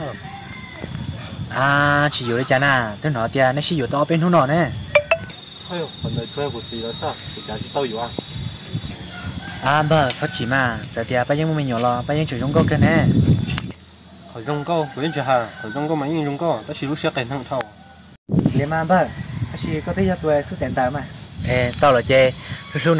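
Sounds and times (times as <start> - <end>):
high-pitched insect drone: 0.0 - 22.9
men talking: 1.5 - 4.7, 5.7 - 8.2, 9.6 - 13.2, 14.3 - 17.6, 18.6 - 22.9.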